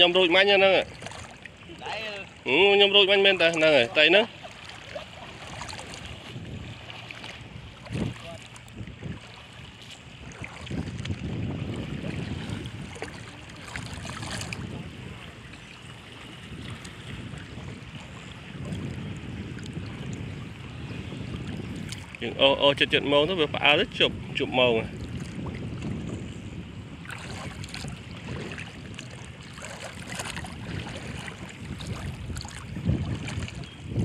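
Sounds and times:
water sloshing around wading legs: 0.0 - 22.9, 24.8 - 34.0
wind buffeting microphone: 0.0 - 34.0.

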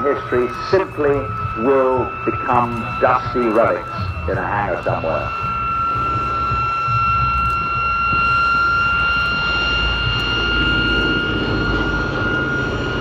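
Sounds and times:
high-pitched whine: 0.0 - 13.0
propeller plane engines droning: 0.0 - 13.0.

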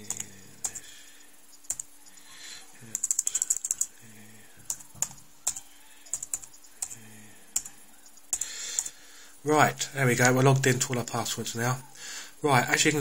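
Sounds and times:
computer keyboard keystrokes: 0.0 - 0.8, 1.7 - 1.9, 2.9 - 4.0, 4.6 - 7.0.

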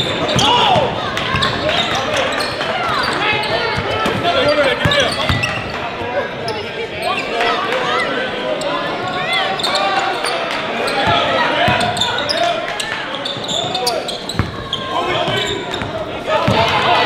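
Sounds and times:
basketball bouncing on court: 0.0 - 5.8, 11.0 - 12.3, 13.3 - 16.9
echoing voices: 0.0 - 17.0
sneakers squeaking: 0.0 - 17.0.

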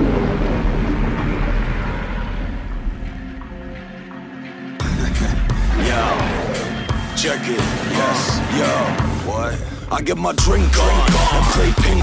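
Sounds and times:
rumbling wash of noise: 0.0 - 4.2.

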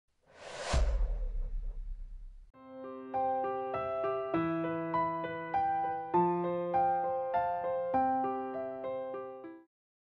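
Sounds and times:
whoosh: 0.3 - 2.6
deep boom: 0.4 - 2.6.

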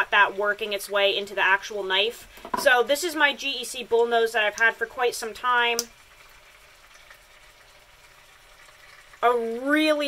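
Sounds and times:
meat sizzling in a pan: 0.0 - 10.0.

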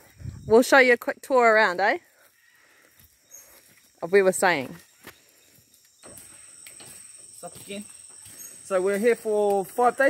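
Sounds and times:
high insect drone: 0.0 - 10.0.

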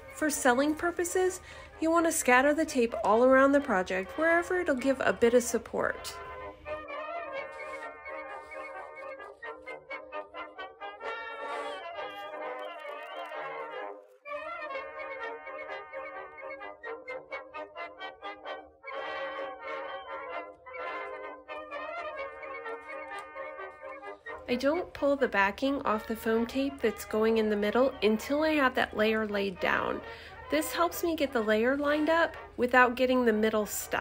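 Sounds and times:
brass music: 0.0 - 34.0.

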